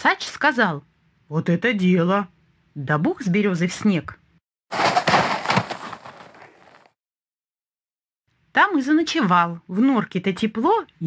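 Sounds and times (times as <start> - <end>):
heavy thump with rushing noise: 4.8 - 6.2.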